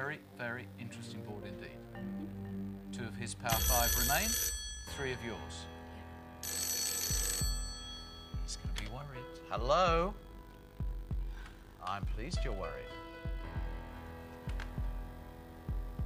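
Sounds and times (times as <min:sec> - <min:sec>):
tense background music: 0:00.7 - 0:04.2, 0:12.1 - 0:16.0
telephone ringing: 0:03.5 - 0:09.4.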